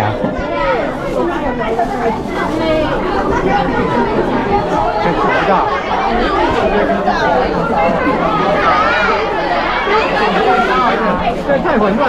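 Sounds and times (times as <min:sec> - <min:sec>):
crowd of students talking: 0:00.0 - 0:12.0.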